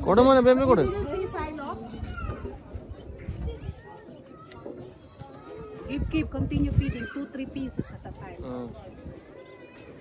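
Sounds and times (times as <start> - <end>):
faint background voices: 0.0 - 10.0
child talking: 1.7 - 5.9, 6.7 - 7.9.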